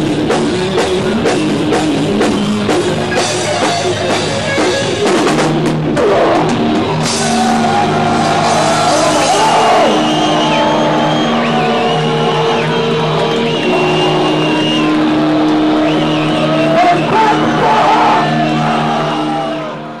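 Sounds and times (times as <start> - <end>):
distorted electric guitars: 0.0 - 20.0
crowd whistling and shouting: 6.0 - 20.0.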